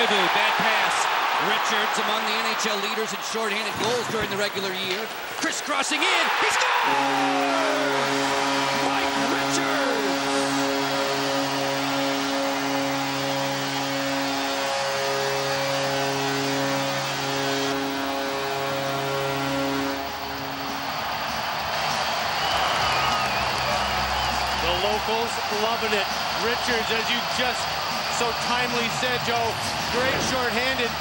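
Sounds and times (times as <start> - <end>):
crowd cheering: 0.0 - 31.0
goal horn low chord: 6.8 - 21.1.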